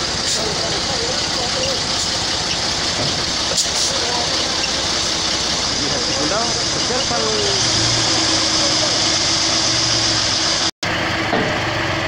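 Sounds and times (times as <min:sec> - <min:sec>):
truck engine rumbling: 0:00.0 - 0:12.0
voices in background: 0:00.3 - 0:02.5, 0:03.5 - 0:09.0.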